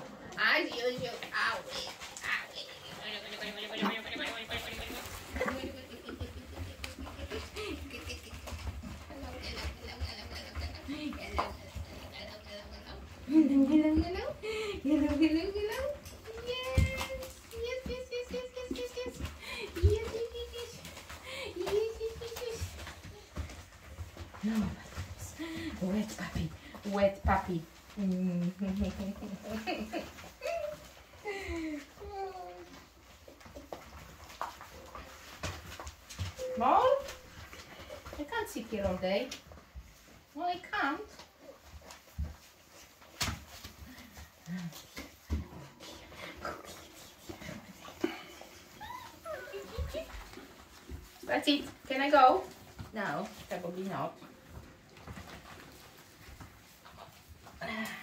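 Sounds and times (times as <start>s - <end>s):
soft bumps of puppies clambering: 0.0s - 58.0s
puppies whining: 46.3s - 51.1s
puppies whimpering: 48.2s - 50.0s.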